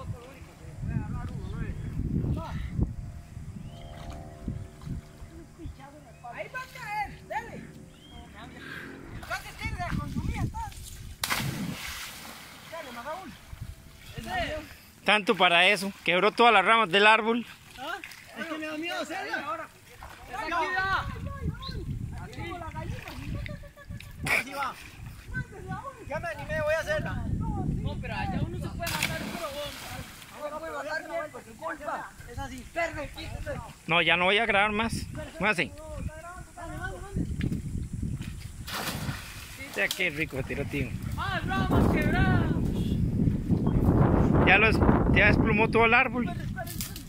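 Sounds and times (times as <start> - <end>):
voices talking and calling out: 0.0 - 11.2, 12.5 - 38.1, 39.4 - 43.1
loud splash into water: 11.2 - 12.7, 28.8 - 30.2, 38.7 - 39.7.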